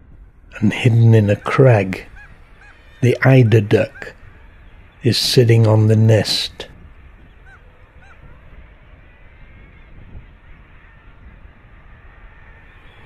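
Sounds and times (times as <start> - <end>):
low steady background noise: 0.0 - 13.0
seabird calls: 0.6 - 13.0.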